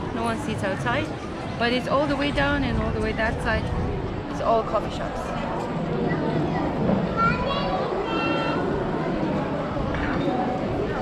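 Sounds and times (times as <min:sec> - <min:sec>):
children calling and chattering: 0:00.0 - 0:11.0
crowd murmur: 0:00.0 - 0:11.0.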